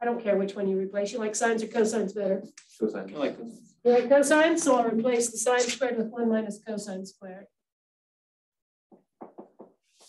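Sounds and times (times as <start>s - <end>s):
marker tapping on whiteboard: 8.9s - 10.0s.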